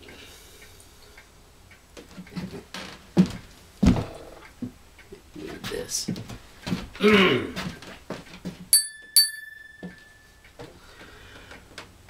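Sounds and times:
small bell dinging: 8.7 - 10.5.

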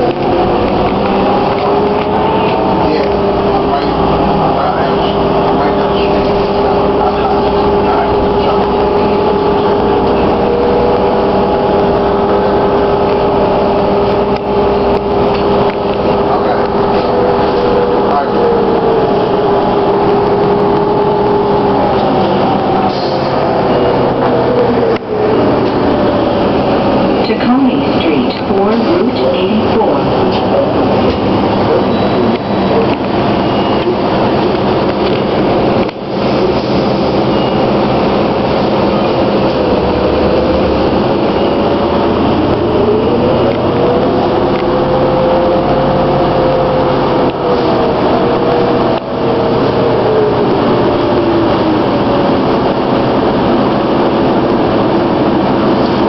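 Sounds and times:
engine and road rumble: 0.0 - 56.0
hybrid bus drive whine: 0.0 - 56.0.

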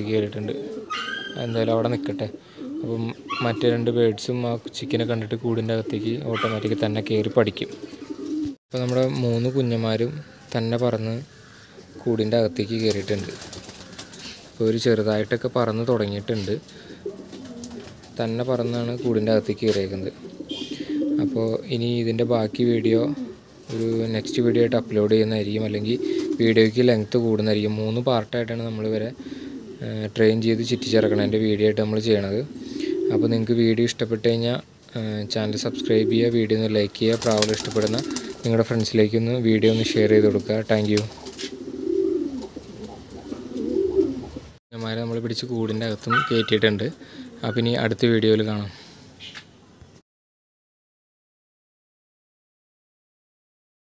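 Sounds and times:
pigeon cooing: 0.3 - 8.6, 16.4 - 18.0, 20.1 - 21.7, 22.4 - 26.7, 28.7 - 33.4, 35.3 - 36.4, 37.2 - 38.5, 41.2 - 44.6, 46.1 - 47.8.

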